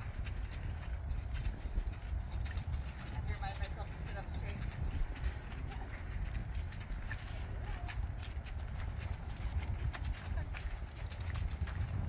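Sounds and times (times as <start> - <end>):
horse hoofbeats on soft dirt: 0.0 - 12.0
steady low rumble: 0.0 - 12.0.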